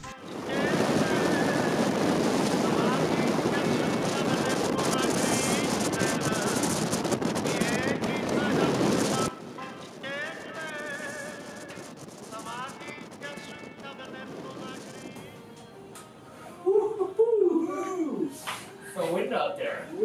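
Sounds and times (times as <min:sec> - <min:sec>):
strong wind buffeting microphone: 0:00.0 - 0:15.2.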